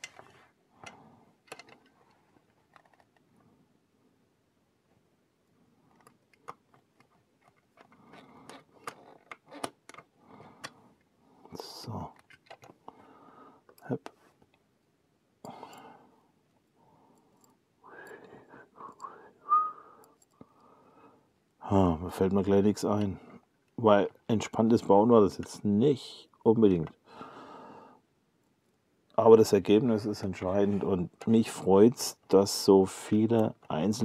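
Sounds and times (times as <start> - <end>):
plastic and wires rustling: 0.0 - 3.3.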